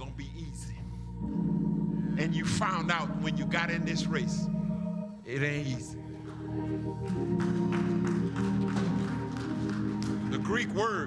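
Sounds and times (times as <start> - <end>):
organ holding chords: 0.0 - 11.0.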